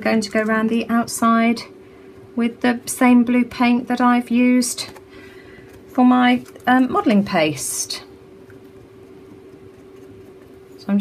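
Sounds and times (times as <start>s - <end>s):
faint steady hum: 0.0s - 11.0s.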